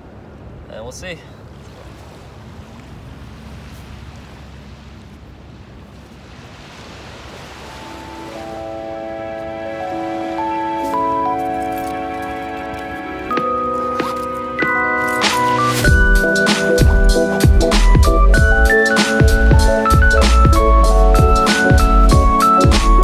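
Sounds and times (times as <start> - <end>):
surf: 0.0 - 23.0
wind: 0.0 - 23.0
slow held chords music: 7.6 - 23.0.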